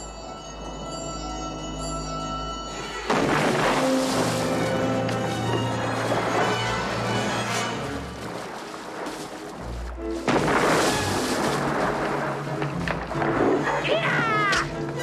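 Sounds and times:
dramatic orchestral music: 0.0s - 15.0s
loud water splashing: 3.1s - 14.9s.

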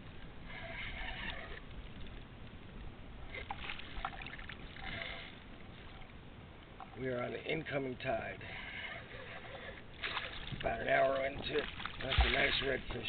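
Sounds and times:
water splashing against kayak hull: 9.9s - 13.0s.

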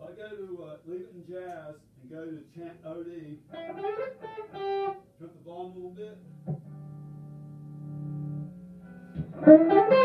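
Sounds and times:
low electric guitar note: 6.2s - 10.0s.

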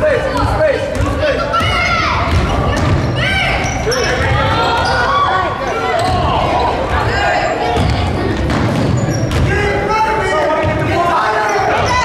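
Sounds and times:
voices of players and spectators: 0.0s - 12.0s
basketball bouncing: 0.3s - 5.0s, 7.6s - 9.6s
sneakers squeaking on hardwood: 0.3s - 9.7s.

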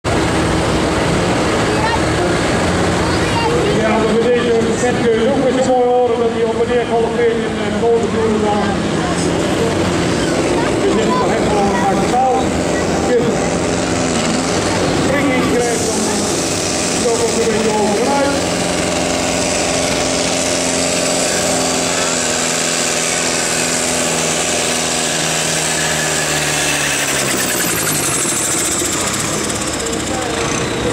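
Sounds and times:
tractor engine running loud: 0.0s - 30.9s.

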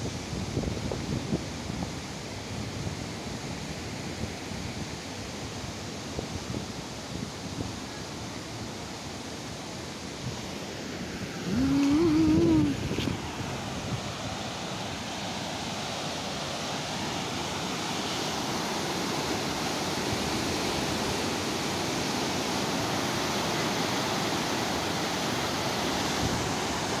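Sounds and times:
floodwater rushing: 10.5s - 27.0s.

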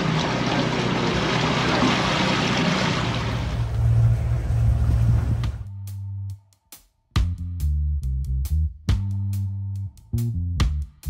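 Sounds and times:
sea water rushing and splashing: 0.0s - 5.6s
low rumble: 0.0s - 6.3s.

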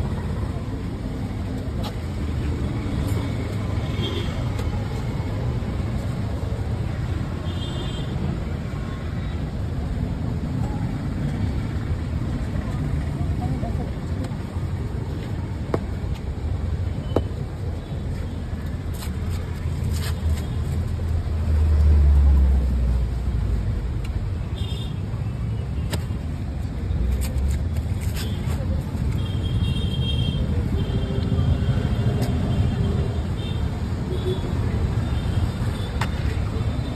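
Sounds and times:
street traffic rumble: 0.0s - 36.9s.

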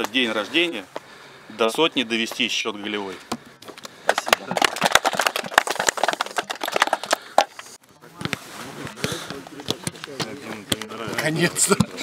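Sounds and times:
men's voices: 0.0s - 5.2s, 5.9s - 12.0s
group clapping hands: 3.8s - 7.8s.

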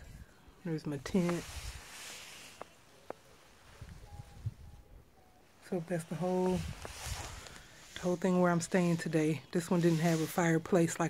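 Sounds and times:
soft footsteps: 1.0s - 4.0s, 5.6s - 10.6s.

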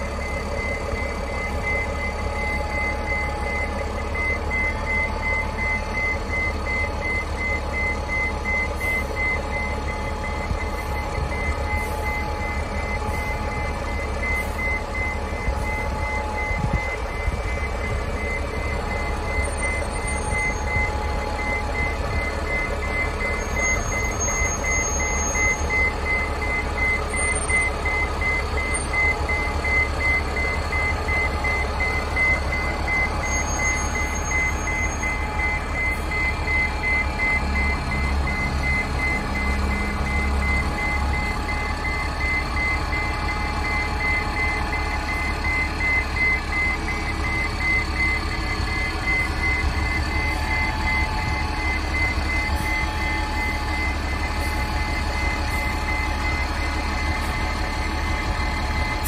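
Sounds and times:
bus engine running: 0.0s - 59.0s
reverse alarm beeping: 0.0s - 59.0s.

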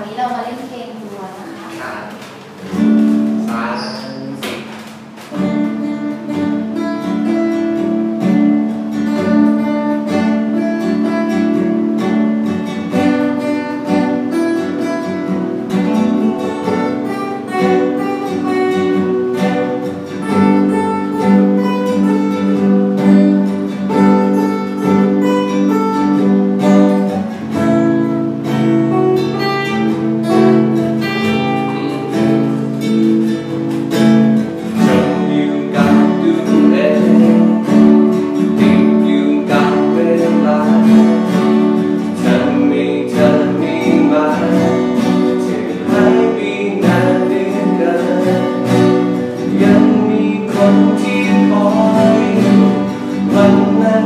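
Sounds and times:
acoustic guitars playing: 0.0s - 54.0s.

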